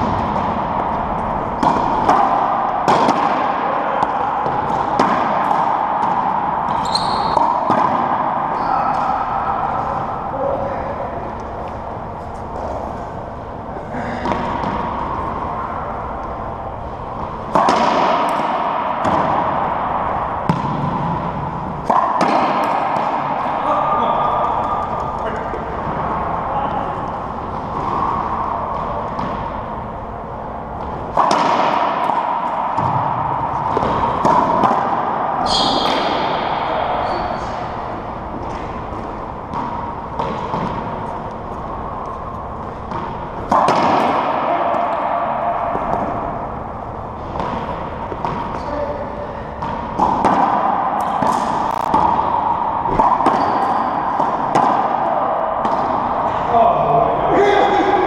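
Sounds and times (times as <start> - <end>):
racquetball smacks: 0.0 - 8.4, 17.5 - 23.6, 30.8 - 36.8, 38.4 - 46.5, 47.2 - 56.4.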